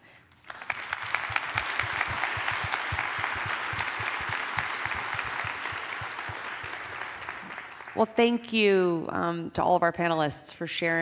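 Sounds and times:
audience applauding: 0.3 - 8.2.

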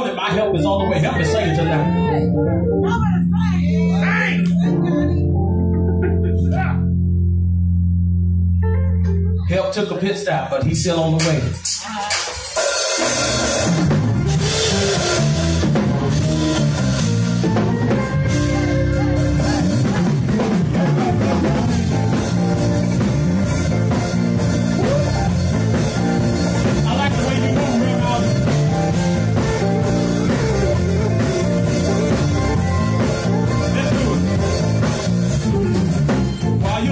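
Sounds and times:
live band playing: 0.0 - 7.4, 8.4 - 36.9
electric guitar: 0.3 - 9.6, 11.7 - 36.9
drum kit with cymbals: 10.6 - 36.9.

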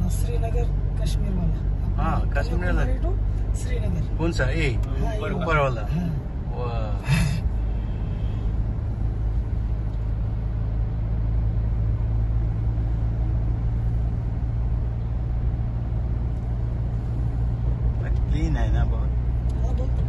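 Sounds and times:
car engine and tyre rumble inside: 0.0 - 20.0.

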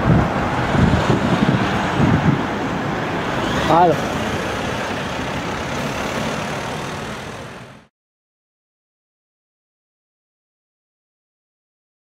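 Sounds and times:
vehicle driving past: 0.0 - 7.9.

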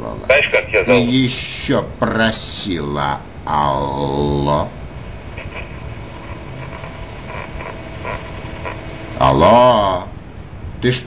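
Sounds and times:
telephone line hiss: 0.2 - 1.1, 3.6 - 10.2.

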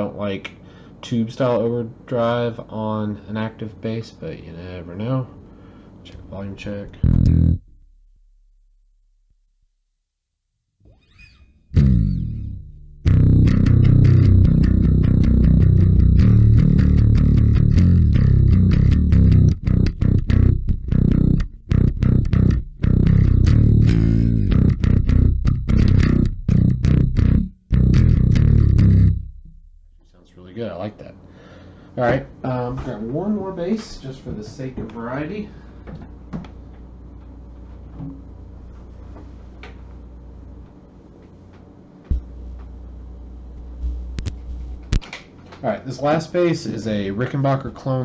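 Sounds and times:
overdriven bass guitar riffing: 6.6 - 9.5, 10.9 - 30.3, 43.6 - 45.0.

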